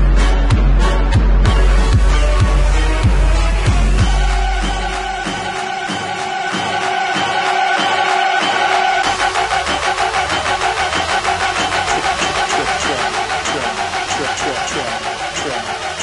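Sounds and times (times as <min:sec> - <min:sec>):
sliding low bass notes: 0:00.0 - 0:05.4
hi-hat ticks: 0:09.0 - 0:16.0.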